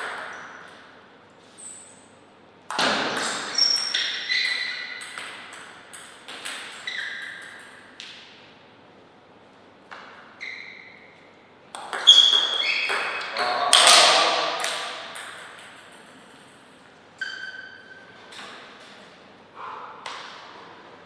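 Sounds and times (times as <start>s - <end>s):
table tennis ball pinging: 2.7s - 8.1s, 11.7s - 16.6s.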